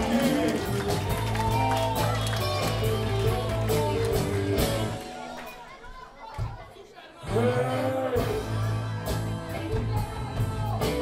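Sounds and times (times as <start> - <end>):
voices talking in crowded room: 0.0 - 11.0.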